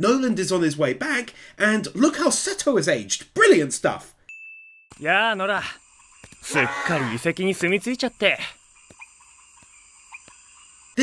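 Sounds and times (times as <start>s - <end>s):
high-pitched insect-like drone: 5.0s - 11.0s
soft chirps and clicks: 5.8s - 6.5s, 7.4s - 11.0s.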